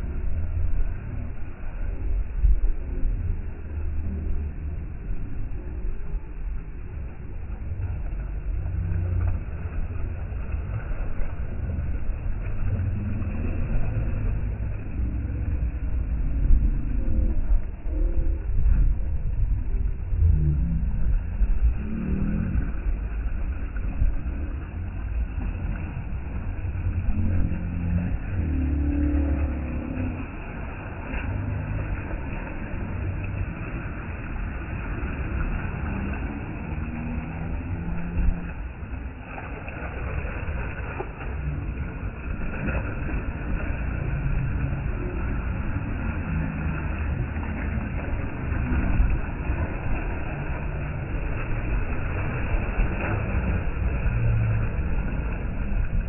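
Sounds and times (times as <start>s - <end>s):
small waves lapping against concrete: 0.0s - 56.0s
wind buffeting microphone: 0.0s - 56.0s.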